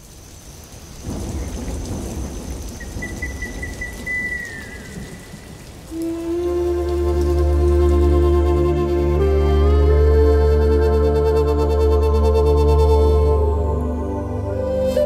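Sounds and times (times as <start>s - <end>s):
rain: 0.0s - 15.0s
thunder rumbles: 0.6s - 8.6s
sustained music chord: 6.0s - 15.0s.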